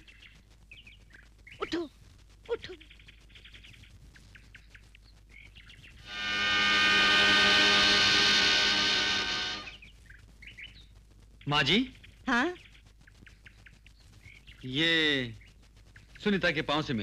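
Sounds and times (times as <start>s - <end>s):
sustained music chord: 6.1s - 9.8s
faint bird chirps: 12.0s - 14.7s.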